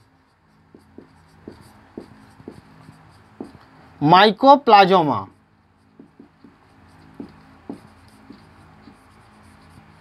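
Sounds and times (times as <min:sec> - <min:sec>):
marker writing on whiteboard: 0:00.0 - 0:10.0.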